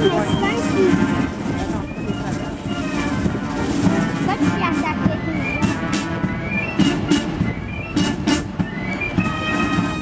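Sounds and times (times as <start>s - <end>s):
military band music: 0.0s - 10.0s.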